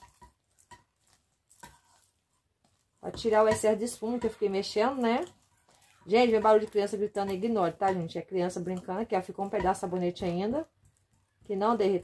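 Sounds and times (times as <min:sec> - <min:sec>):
spatula scraping steel bowl: 0:00.0 - 0:12.0.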